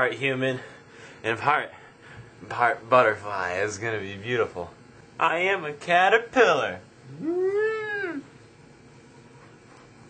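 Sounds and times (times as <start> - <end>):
meow-like call: 7.1 - 8.2.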